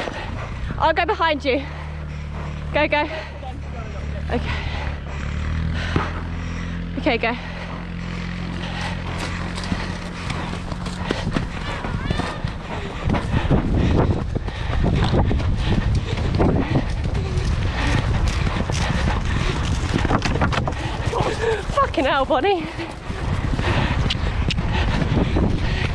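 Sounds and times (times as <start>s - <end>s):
horses galloping on turf: 0.0s - 25.9s.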